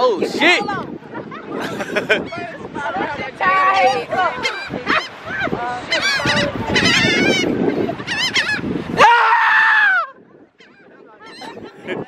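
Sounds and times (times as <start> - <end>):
gulls calling: 0.0 - 12.0.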